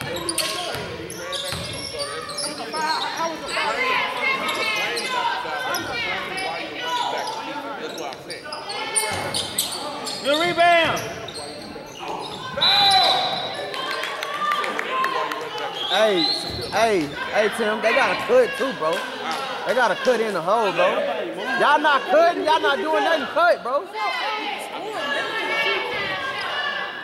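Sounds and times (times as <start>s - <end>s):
sneaker squeaks: 0.0s - 14.1s, 15.5s - 18.4s
players calling out: 0.0s - 27.0s.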